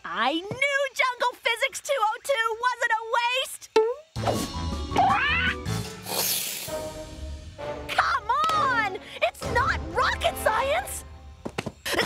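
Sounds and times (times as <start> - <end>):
background music: 4.2 - 11.5
brief hissing noise: 6.0 - 6.9.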